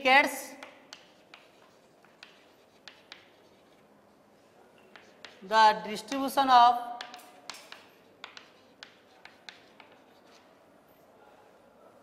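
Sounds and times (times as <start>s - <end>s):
chalk tapping on chalkboard: 0.5s - 3.9s, 4.8s - 6.3s, 6.9s - 10.6s.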